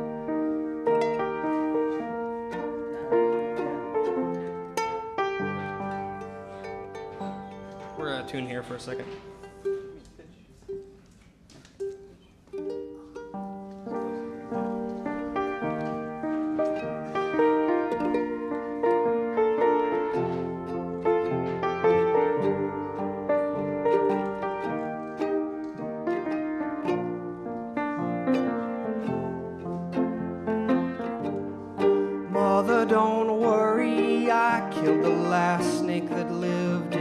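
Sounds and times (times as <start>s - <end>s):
ukulele strings plucked: 0.8s - 11.0s, 11.6s - 37.0s.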